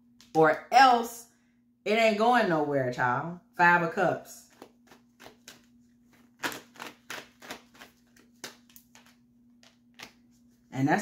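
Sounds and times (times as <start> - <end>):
cards clicking and snapping: 4.5 - 10.2.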